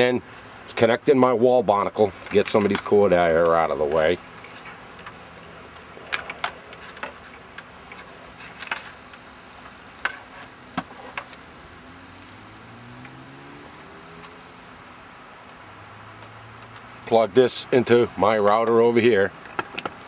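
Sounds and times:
plastic router and cables handled: 2.0s - 11.6s
faint low drone rising in pitch: 11.6s - 14.7s.

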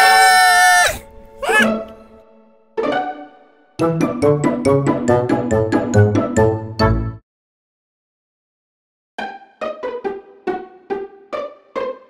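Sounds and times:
cartoon characters screaming: 0.0s - 1.7s
background music: 0.0s - 7.2s, 9.2s - 12.0s.

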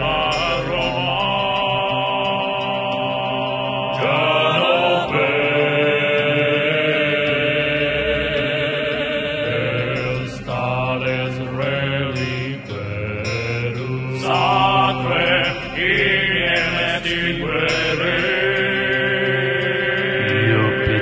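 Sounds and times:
sustained drone: 0.0s - 21.0s
low male voice chanting: 20.2s - 21.0s.

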